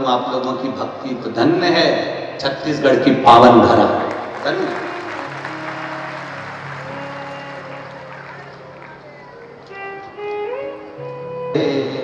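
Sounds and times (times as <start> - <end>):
large audience applauding: 3.8 - 9.7
held instrumental notes: 4.2 - 12.0.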